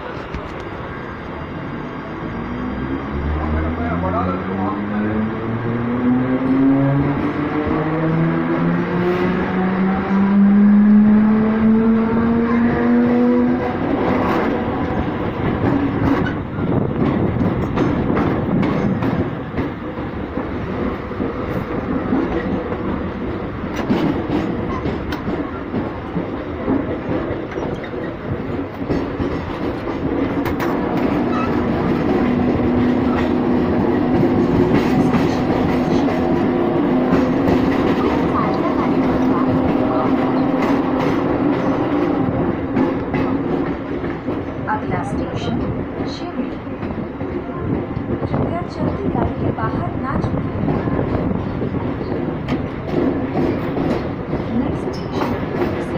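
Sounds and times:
train wheels rumbling on rails: 0.0s - 55.9s
wheels clacking over rail joints: 11.8s - 55.9s.

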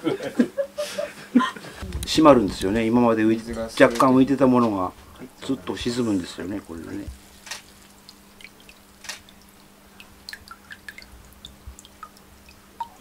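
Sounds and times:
faint steady hum: 0.0s - 13.0s
water dripping into water: 3.5s - 13.0s.

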